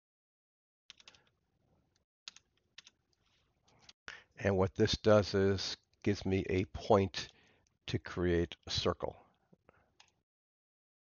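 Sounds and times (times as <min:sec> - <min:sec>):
faint keyboard keystrokes: 0:00.9 - 0:01.3.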